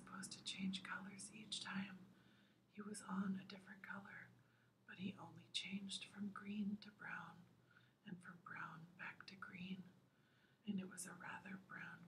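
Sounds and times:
woman reading aloud softly: 0.0 - 2.1, 2.7 - 10.0, 10.6 - 12.0.

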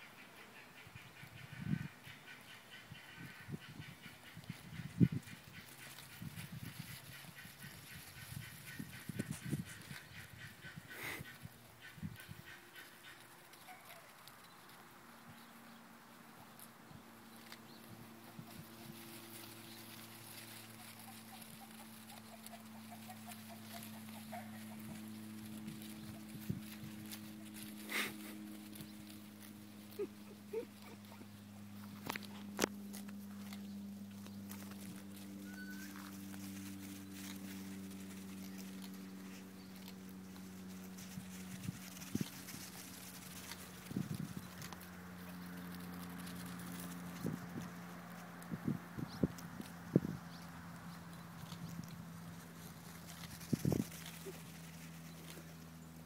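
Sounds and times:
hooves pattering on sandy dirt: 1.2 - 56.0.

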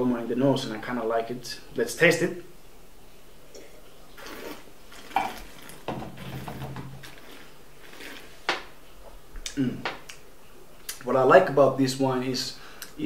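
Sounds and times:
sipping from a glass: 3.5 - 8.5.

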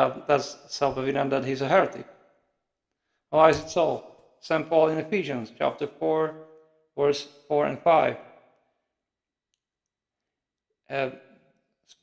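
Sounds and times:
man speaking: 0.0 - 2.2, 3.3 - 6.4, 7.0 - 8.2, 10.9 - 11.2.

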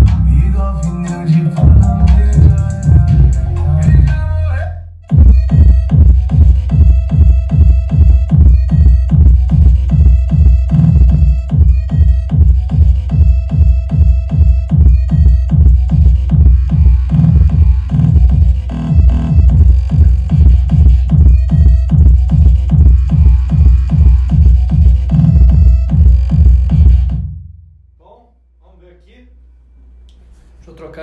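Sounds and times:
electronic dance music with heavy bass: 0.0 - 27.3.

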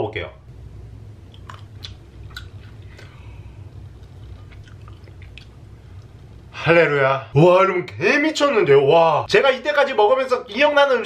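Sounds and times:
steady low hum: 0.0 - 11.0
wet mouth clicks: 1.3 - 3.2, 3.9 - 5.6
person chewing: 1.3 - 6.2.

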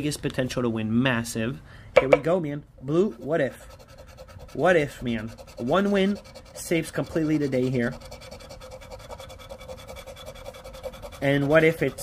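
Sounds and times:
scratching lottery ticket: 3.0 - 12.0.

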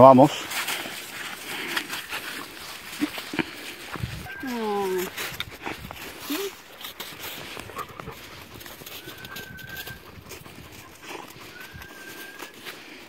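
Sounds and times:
dogs moving in crunchy snow: 0.0 - 13.0.

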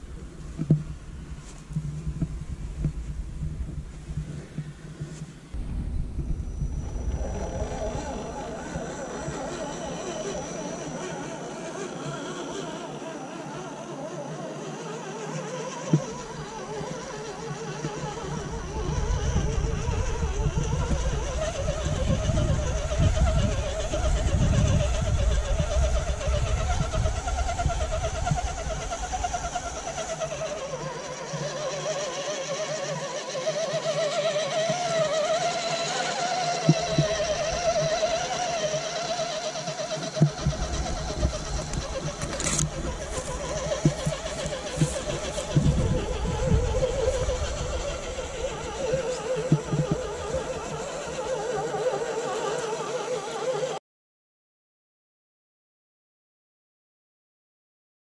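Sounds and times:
wind rumble on microphone: 0.0 - 12.4, 15.8 - 31.7, 35.7 - 39.4, 40.0 - 51.8
toy truck motor whining: 6.8 - 53.8.

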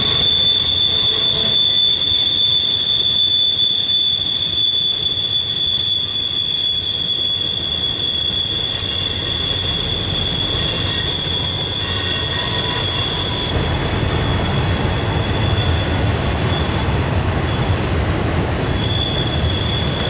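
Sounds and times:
train wheels squealing: 0.0 - 18.0, 18.6 - 20.0
rumble of freight cars: 0.0 - 20.0.

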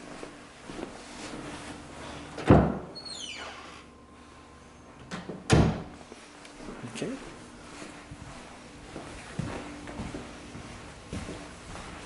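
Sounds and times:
falling creak: 3.0 - 3.8.

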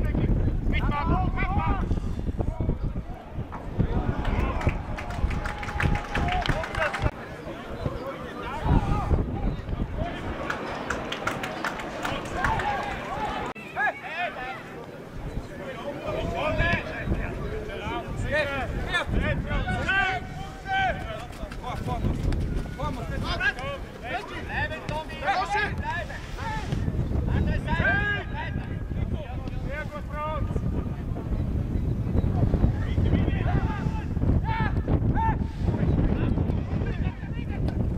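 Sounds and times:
wind rumble on microphone: 0.0 - 10.4, 15.2 - 37.9
voices shouting: 2.5 - 22.0.

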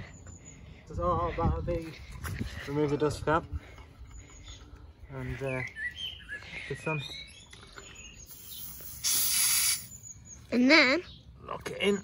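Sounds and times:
air hissing from tyre valve: 8.3 - 10.1.

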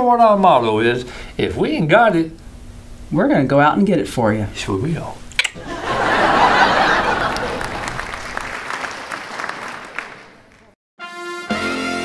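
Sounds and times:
audience applause: 5.6 - 10.8.

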